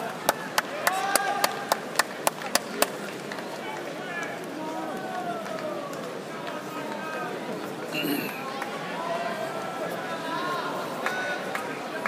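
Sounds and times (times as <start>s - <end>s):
crowd murmur and chatter: 0.0s - 12.0s.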